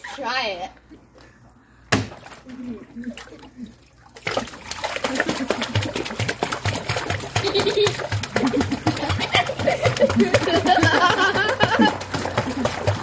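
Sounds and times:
dog paddling splashing pool water: 2.1s - 13.0s.

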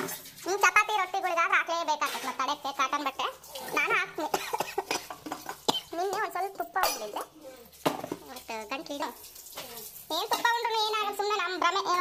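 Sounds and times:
utensils and containers clinking: 0.0s - 12.0s
voices talking: 0.5s - 12.0s.

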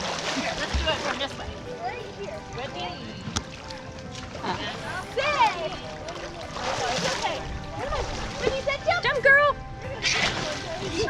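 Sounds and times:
water splashing: 0.0s - 11.0s.

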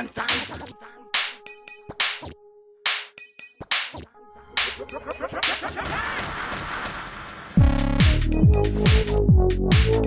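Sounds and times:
dance music build-up: 4.6s - 10.0s.

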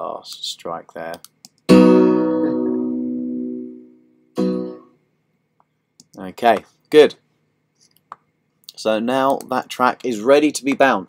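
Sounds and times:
instrumental chord ringing out: 1.7s - 4.9s.

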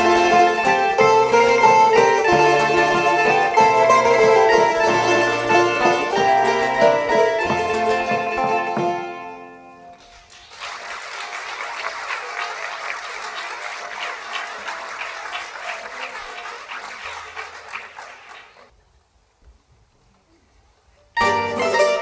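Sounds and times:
audience applauding: 9.9s - 18.7s.

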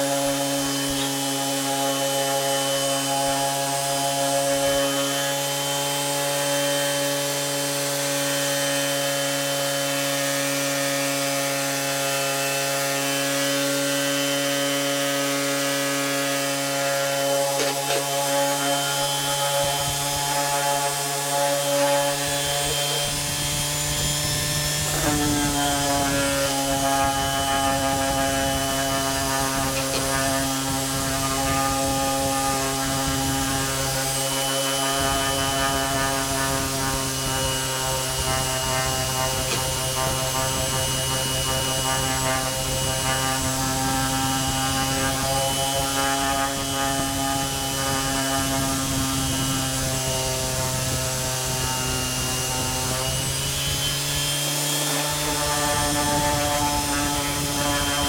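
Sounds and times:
orbital sander on wood: 0.0s - 58.0s.

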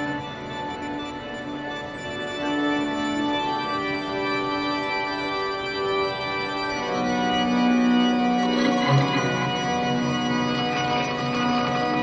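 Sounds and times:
synthesizer organ-like pad: 6.2s - 12.0s.

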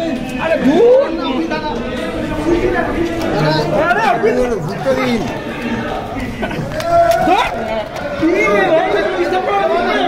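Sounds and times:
overlapping voices: 0.0s - 10.0s.

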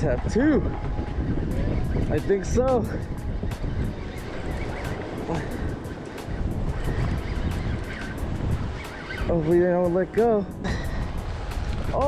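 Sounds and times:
wind buffeting microphone: 0.0s - 12.0s
fishing reel cranking and ticking: 1.2s - 12.0s.

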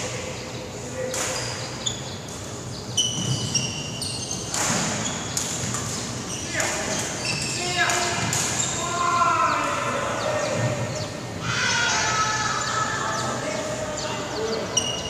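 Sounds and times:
players' voices: 0.0s - 3.0s, 4.7s - 15.0s
shoes squeaking on wooden floor: 1.3s - 7.8s, 14.7s - 15.0s
racket striking shuttlecock: 4.4s - 7.2s, 7.8s - 8.6s.

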